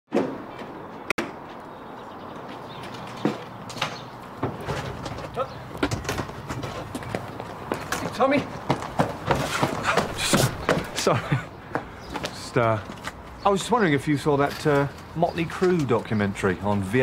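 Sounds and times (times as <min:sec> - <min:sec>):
outdoor ambience: 0:00.1 - 0:17.0.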